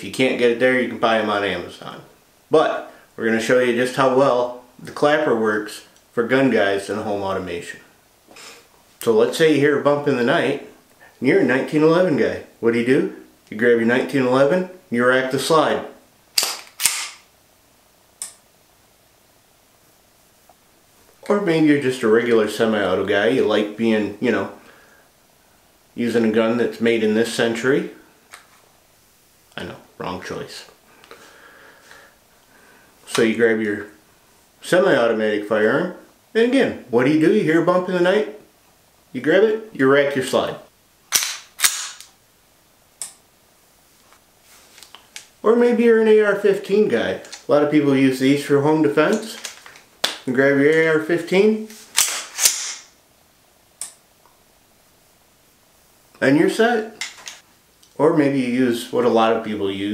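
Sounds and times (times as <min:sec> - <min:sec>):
pistol slide snapping home: 0:16.4 - 0:17.2, 0:41.1 - 0:42.2, 0:51.9 - 0:52.9.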